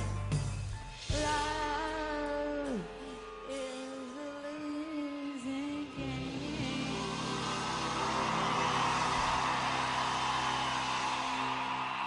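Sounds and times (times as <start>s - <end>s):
large crowd cheering: 2.6s - 12.0s.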